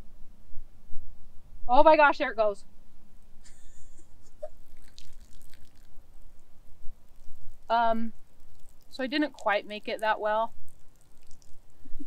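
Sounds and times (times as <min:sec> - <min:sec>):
urine splattering on dry grass: 0:04.8 - 0:05.9, 0:10.7 - 0:11.6.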